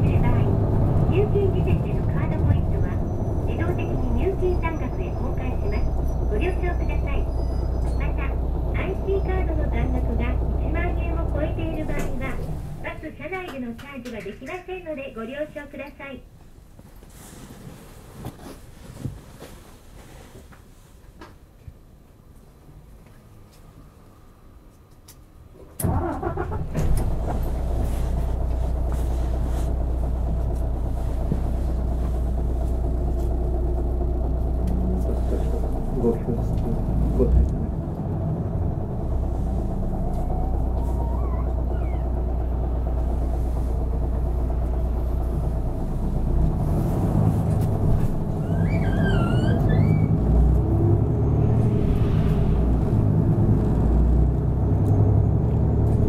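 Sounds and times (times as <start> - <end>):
bus diesel engine: 0.0 - 16.6, 22.2 - 56.0.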